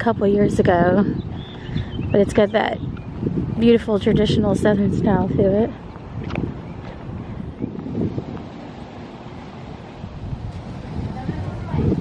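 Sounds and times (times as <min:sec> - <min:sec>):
wind blowing across microphone: 0:00.0 - 0:12.0.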